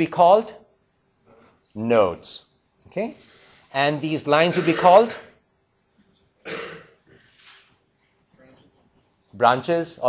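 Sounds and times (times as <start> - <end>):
man coughing: 4.4 - 5.4, 6.4 - 7.0.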